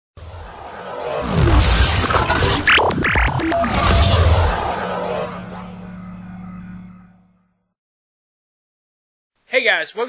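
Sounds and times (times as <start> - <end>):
electronic jingle held low note: 3.4 - 7.6.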